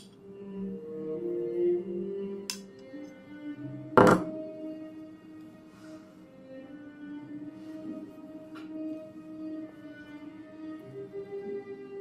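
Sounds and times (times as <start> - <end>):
background music: 0.0 - 12.0
knife set down on wooden desk: 4.0 - 4.4.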